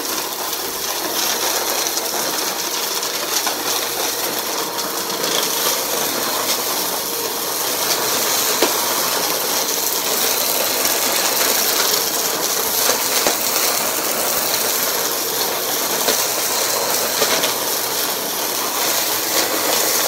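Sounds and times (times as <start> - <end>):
vacuum cleaner running over carpet: 0.0 - 20.0
debris rattling in nozzle: 3.3 - 20.0.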